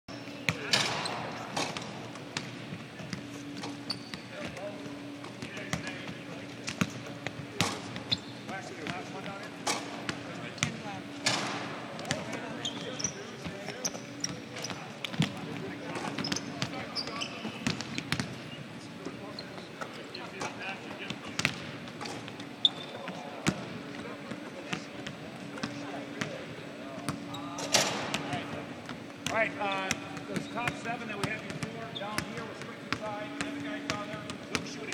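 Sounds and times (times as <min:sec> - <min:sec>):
basketballs bouncing on gym court: 0:00.3 - 0:18.5, 0:20.4 - 0:34.9
voices talking: 0:00.4 - 0:34.9.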